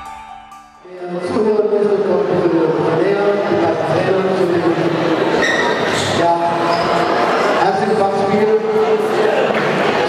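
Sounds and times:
man talking into a microphone: 0.8s - 5.2s, 5.8s - 7.0s, 7.6s - 9.6s.

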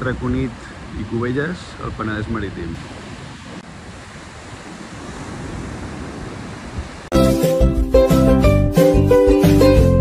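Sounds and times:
sea surf rushing: 0.0s - 10.0s
wind on microphone: 2.0s - 7.1s
music with plucked notes: 7.1s - 10.0s.

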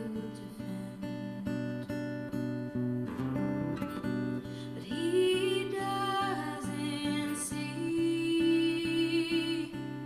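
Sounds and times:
woman singing: 0.0s - 2.2s, 4.4s - 10.0s
acoustic guitar strumming: 0.0s - 10.0s.

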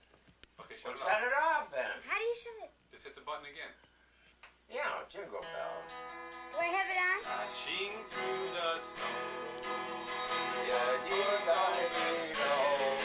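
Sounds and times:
acoustic guitar strummed: 5.4s - 13.0s
person singing: 7.2s - 13.0s.

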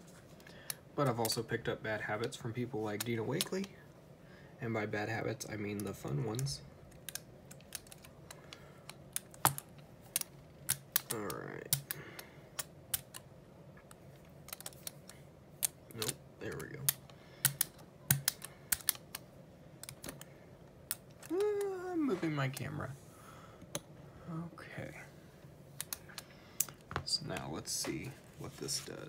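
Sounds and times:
sharp clicks and crackles: 5.8s - 21.7s, 25.8s - 26.9s.

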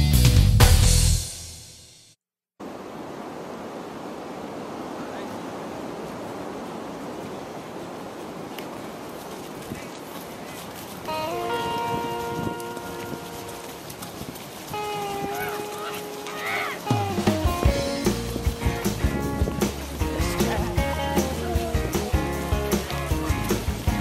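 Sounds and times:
steady rushing noise: 2.6s - 24.0s.

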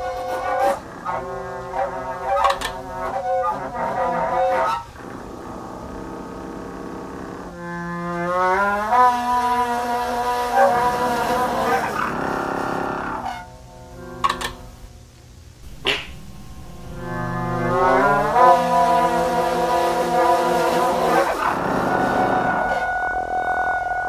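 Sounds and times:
homemade pipe honking notes: 15.6s - 18.6s.

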